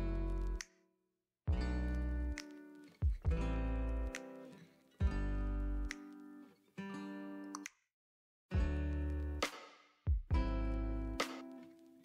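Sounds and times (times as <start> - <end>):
acoustic guitar chords strummed: 0.0 - 0.6, 1.5 - 2.4, 3.0 - 7.4, 8.5 - 9.5, 10.3 - 11.7.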